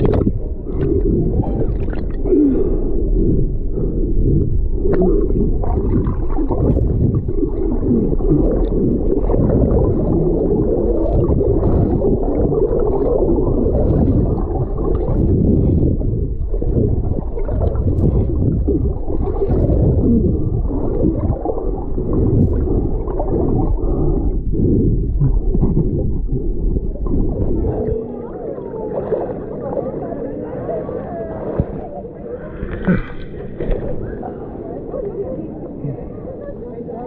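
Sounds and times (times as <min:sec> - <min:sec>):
stream flowing: 0:00.0 - 0:03.1
underwater rumble of moving water: 0:00.0 - 0:37.0.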